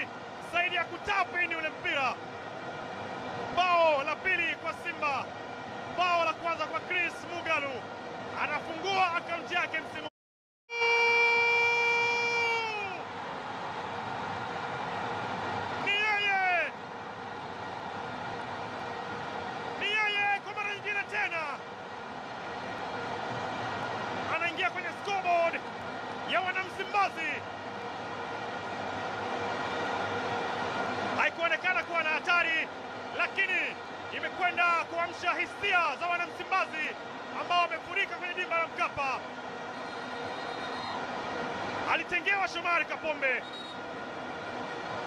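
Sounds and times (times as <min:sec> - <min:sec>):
excited football commentator: 0:00.0 - 0:02.2, 0:03.6 - 0:05.3, 0:06.0 - 0:07.8, 0:08.4 - 0:10.1, 0:10.7 - 0:13.0, 0:15.8 - 0:16.7, 0:19.8 - 0:21.6, 0:24.3 - 0:25.6, 0:26.3 - 0:27.4, 0:31.2 - 0:39.2, 0:41.9 - 0:43.5
stadium crowd noise: 0:00.0 - 0:10.1, 0:10.7 - 0:45.0.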